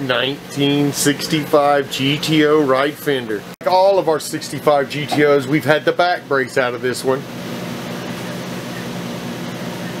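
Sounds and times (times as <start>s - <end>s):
steady hum with hiss: 0.0s - 10.0s.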